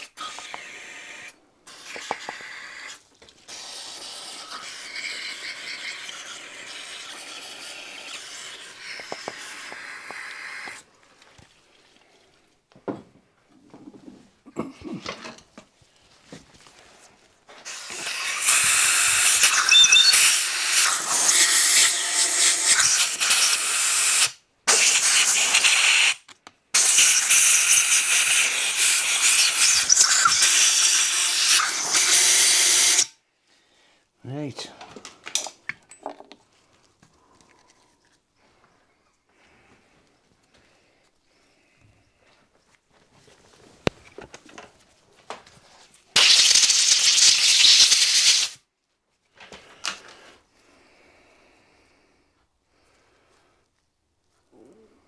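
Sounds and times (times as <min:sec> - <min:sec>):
aerosol spray can hissing: 0:00.0 - 0:10.8, 0:17.6 - 0:33.1, 0:46.2 - 0:48.6
compressed air blow gun blasts: 0:00.0 - 0:10.8, 0:17.6 - 0:26.2, 0:26.8 - 0:33.1, 0:46.1 - 0:48.6.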